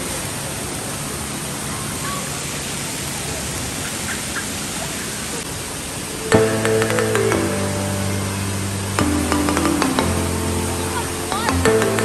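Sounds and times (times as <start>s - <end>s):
water rushing down a water slide: 0.0s - 6.4s
background music with held chords: 6.3s - 12.0s.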